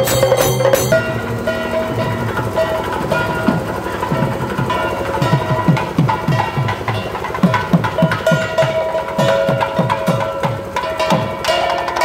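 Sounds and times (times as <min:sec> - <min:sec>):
drum strokes falling in pitch: 0:00.0 - 0:12.0.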